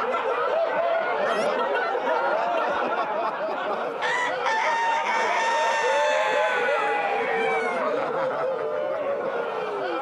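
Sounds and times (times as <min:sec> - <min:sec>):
crowd laughing and chattering: 0:00.0 - 0:10.0.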